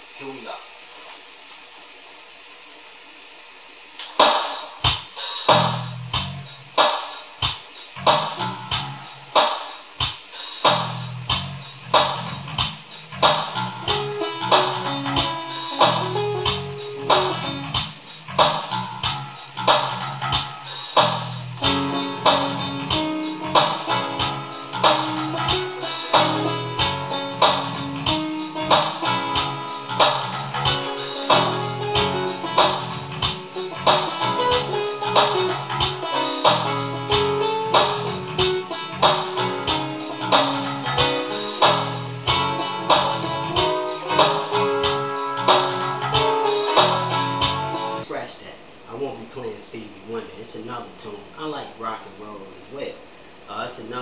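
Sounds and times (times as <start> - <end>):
faint room hiss: 0.0 - 54.0
backing track beat and bass: 4.0 - 48.1
electronic keyboard playing: 8.0 - 9.4, 10.7 - 48.0.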